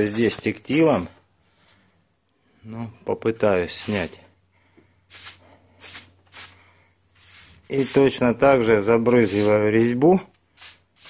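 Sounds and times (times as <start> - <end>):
aerosol can spraying: 3.8 - 4.2, 5.1 - 6.6, 7.2 - 8.1, 9.2 - 9.7, 10.6 - 11.0.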